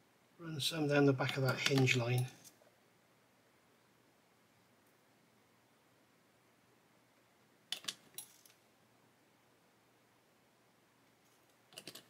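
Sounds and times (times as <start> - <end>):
plastic parts clicking and tapping: 11.7 - 12.0.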